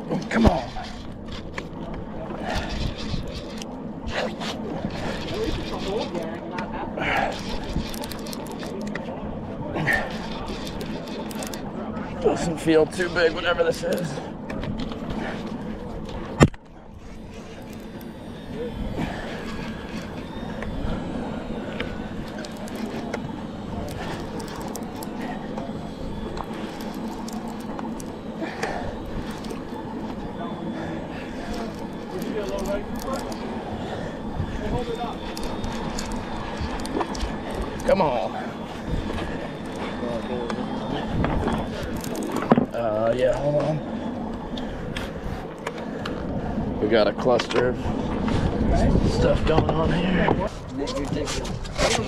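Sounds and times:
voices talking: 0.0s - 52.0s
fishing reel being cranked: 0.1s - 9.2s, 9.8s - 52.0s.

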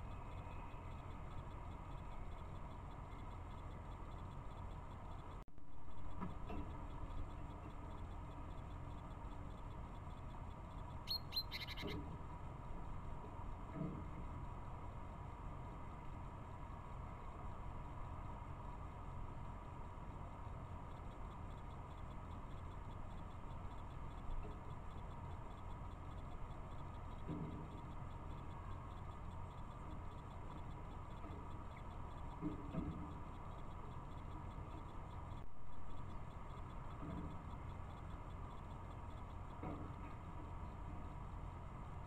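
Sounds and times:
small birds chirping: 0.0s - 5.4s, 6.5s - 12.2s, 20.6s - 41.3s.

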